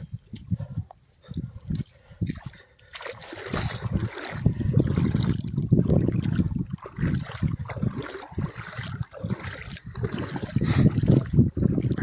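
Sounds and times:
wind buffeting microphone: 0:00.0 - 0:12.0
people wading in shallow water: 0:00.6 - 0:12.0.

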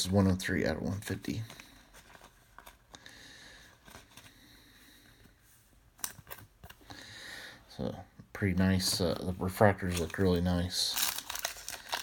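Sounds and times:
card rustling into plastic sleeve: 0:00.0 - 0:07.0, 0:08.7 - 0:12.0.

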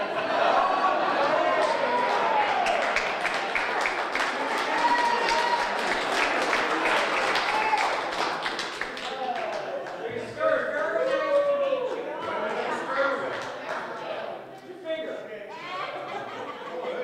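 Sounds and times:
audience applauding: 0:00.0 - 0:10.3
crowd chatter: 0:00.0 - 0:17.0.

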